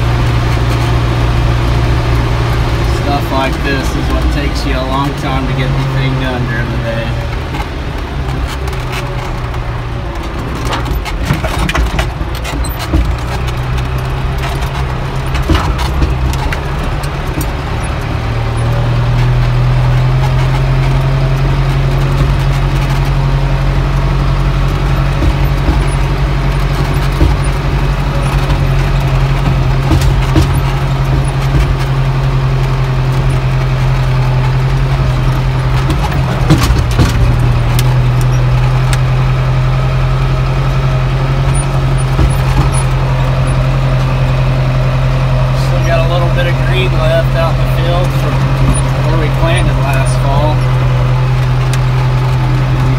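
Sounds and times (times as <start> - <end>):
knocks and rattles: 0.0 - 52.9
tractor engine running: 0.0 - 52.9.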